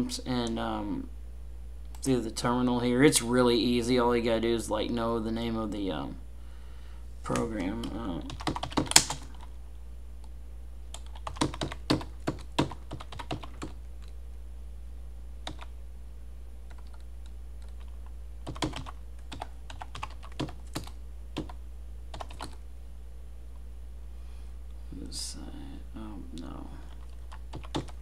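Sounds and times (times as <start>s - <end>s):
steady low hum: 0.0s - 28.0s
computer keyboard typing: 7.3s - 9.5s, 10.9s - 14.2s, 15.4s - 15.7s, 16.7s - 22.6s, 26.9s - 28.0s.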